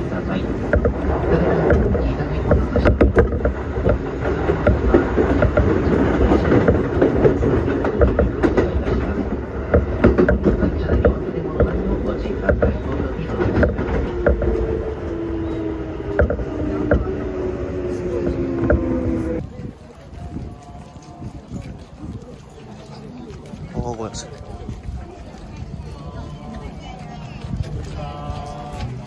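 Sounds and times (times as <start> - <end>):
train rumble: 0.0 - 29.0
wheels clicking over rail joints: 0.0 - 29.0
train motor whine: 13.5 - 19.4.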